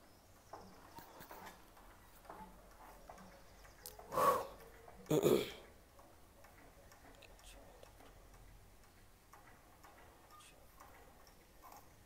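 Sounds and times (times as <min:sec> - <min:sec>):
faint irregular clicks: 0:00.0 - 0:12.0.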